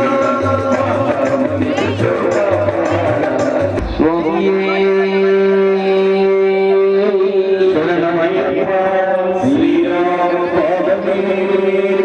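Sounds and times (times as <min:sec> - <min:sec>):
regular drum beat: 0:00.0 - 0:05.1
devotional singing: 0:00.0 - 0:12.0.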